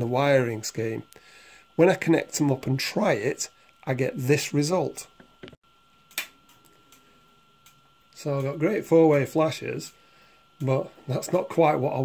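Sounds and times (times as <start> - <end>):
indicator relay clicking: 5.4 - 8.6.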